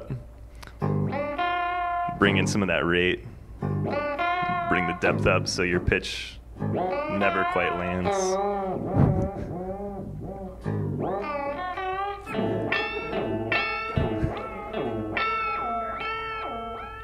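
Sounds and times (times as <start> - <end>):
wobbling chorus electric guitar: 0.0 - 2.8, 3.6 - 5.8, 6.5 - 17.0.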